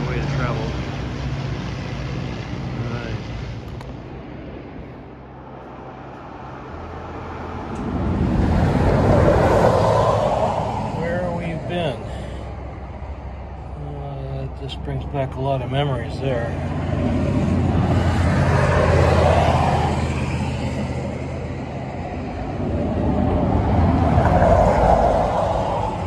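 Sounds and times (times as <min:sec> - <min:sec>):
engine passing by: 0:00.0 - 0:26.0
low engine drone: 0:00.0 - 0:26.0.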